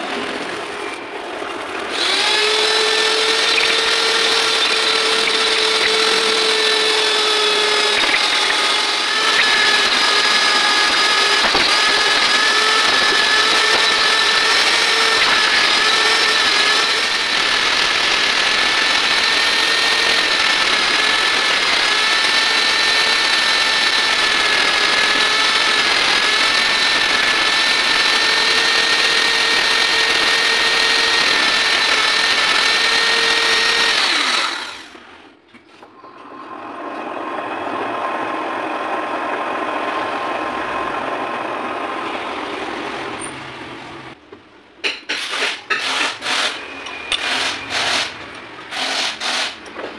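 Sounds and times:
die grinder high whine: 0:00.0 - 0:35.2, 0:36.4 - 0:44.2.

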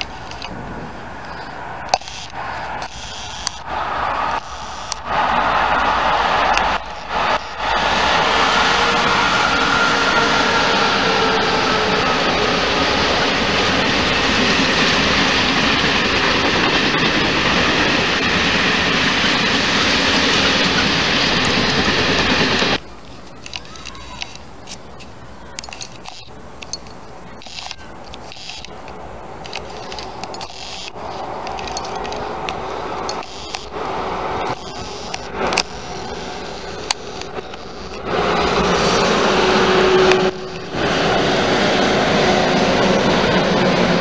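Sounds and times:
faint whine: 0:00.0 - 0:09.5, 0:20.8 - 0:41.9
train wheels rumbling on rail: 0:00.0 - 0:44.0.

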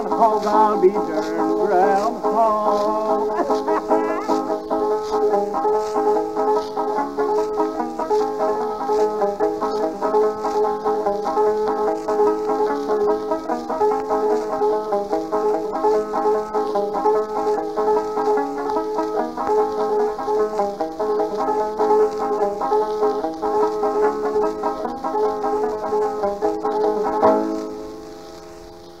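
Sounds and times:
banjo picking fast melody: 0:00.0 - 0:27.8.

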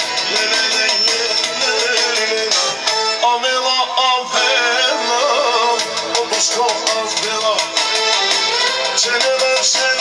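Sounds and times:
keyboard backing: 0:00.0 - 0:10.0
processed singing voice: 0:00.0 - 0:10.0.

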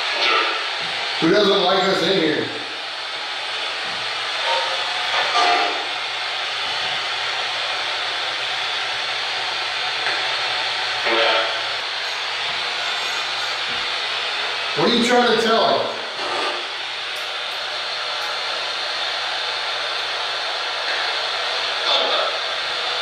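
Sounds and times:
radio static hiss: 0:00.0 - 0:08.4, 0:09.2 - 0:17.1, 0:17.9 - 0:23.0
faint voice fragments over radio: 0:21.8 - 0:22.4.

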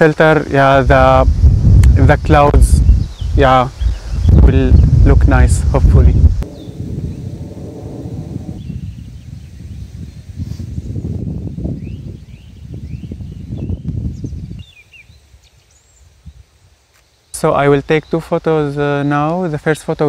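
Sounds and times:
wind gusting on microphone: 0:00.0 - 0:20.0
small birds chirping: 0:02.3 - 0:20.0.

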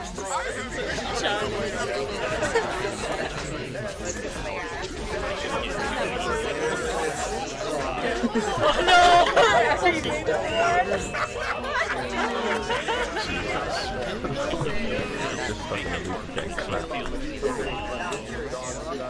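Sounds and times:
overlapping chatter of voices: 0:00.0 - 0:19.0.

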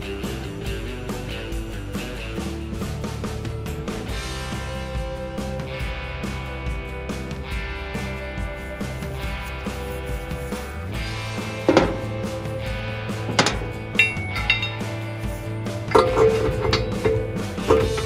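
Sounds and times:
background music: 0:00.0 - 0:18.0
metallic clinks of wrench on steel: 0:14.0 - 0:18.0.

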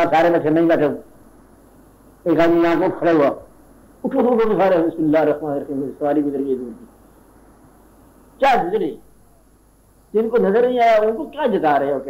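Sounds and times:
tape hiss: 0:00.0 - 0:12.0.

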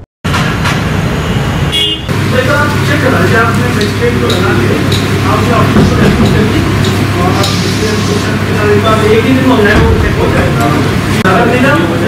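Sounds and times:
road traffic: 0:00.2 - 0:12.0
vehicle horn toot: 0:01.7 - 0:02.1
indistinct voices: 0:02.1 - 0:12.0.

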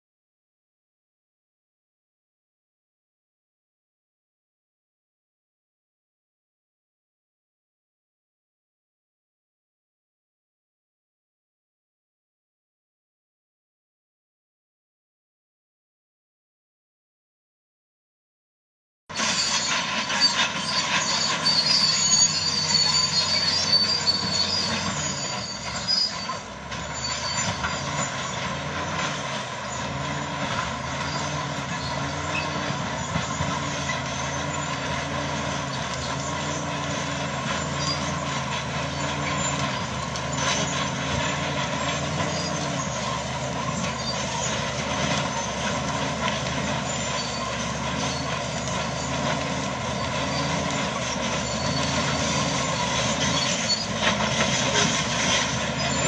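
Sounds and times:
bulldozer diesel drone: 0:19.1 - 0:56.0
high squeal from tracks: 0:19.1 - 0:56.0.

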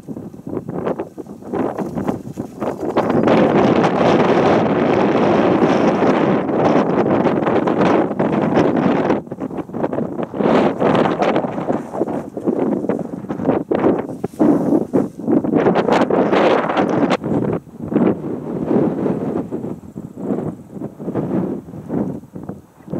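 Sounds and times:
wind buffeting microphone: 0:00.0 - 0:22.9.

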